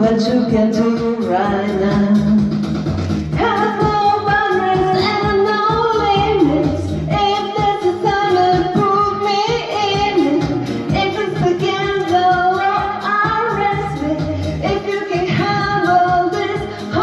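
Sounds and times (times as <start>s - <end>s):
woman singing: 0.0s - 2.6s, 3.3s - 17.0s
pop backing track: 0.0s - 17.0s.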